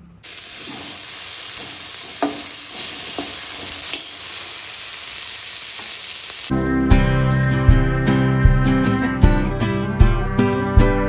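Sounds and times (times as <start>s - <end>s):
food sizzling in hot oil: 0.2s - 6.5s.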